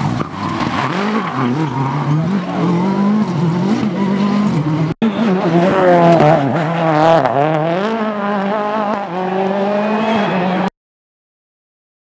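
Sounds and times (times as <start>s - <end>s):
rally car engines revving: 0.0s - 10.7s.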